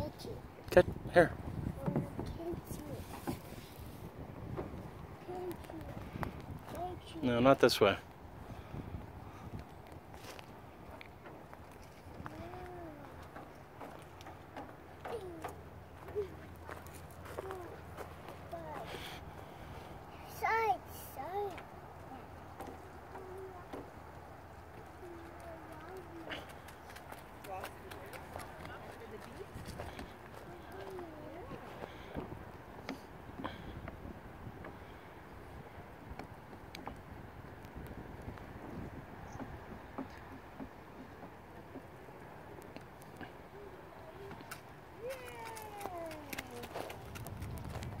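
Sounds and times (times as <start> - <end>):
child's wordless voice: 0.0 - 0.5, 1.6 - 3.8, 5.1 - 7.3, 12.1 - 13.6, 15.0 - 27.9, 29.8 - 32.2, 43.2 - 47.0
footsteps on wood chips: 15.9 - 19.0.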